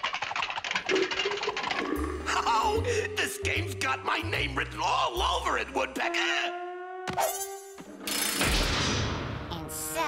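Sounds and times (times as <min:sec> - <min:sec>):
rapid clattering clicks: 0:00.0 - 0:02.1.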